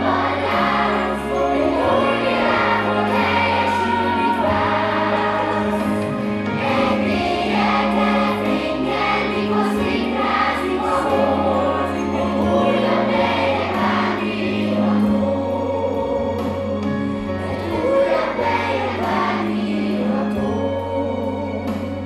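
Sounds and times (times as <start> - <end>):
children's choir singing: 0.0 - 22.0
instrumental accompaniment: 0.0 - 22.0.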